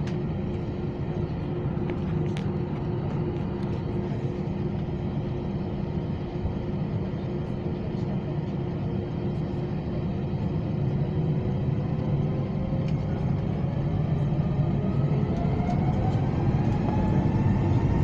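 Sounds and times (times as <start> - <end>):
jet engine cabin drone: 0.0 - 18.0
engine whine rising: 11.4 - 18.0.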